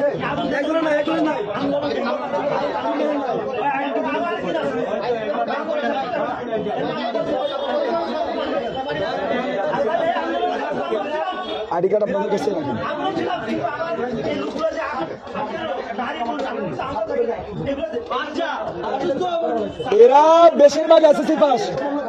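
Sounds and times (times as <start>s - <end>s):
babble of men talking: 0.0s - 22.0s.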